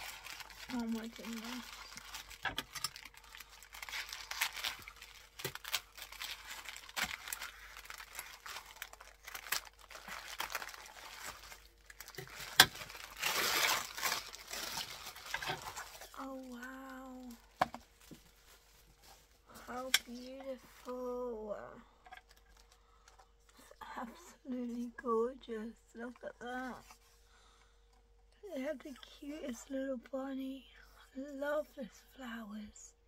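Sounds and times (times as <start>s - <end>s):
cellophane crinkling and tearing: 0.0s - 21.0s, 22.2s - 23.2s.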